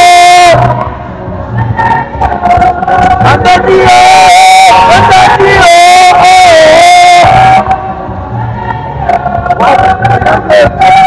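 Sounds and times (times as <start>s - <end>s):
voices singing in church: 1.7s - 8.0s.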